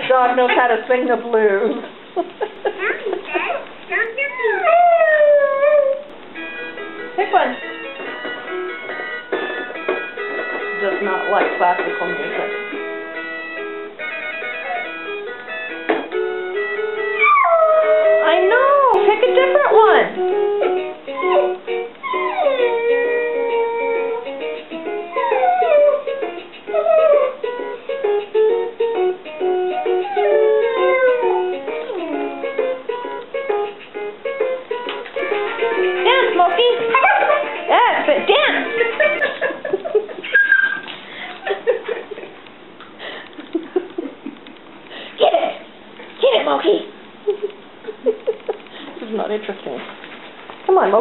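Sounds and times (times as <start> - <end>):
dog howling: 4.2 - 6.1, 17.2 - 19.0, 21.2 - 24.2, 25.1 - 27.4, 29.8 - 32.2, 36.8 - 37.6
toy playing tinny tune: 6.4 - 17.3
children's music toy tune: 6.4 - 39.0.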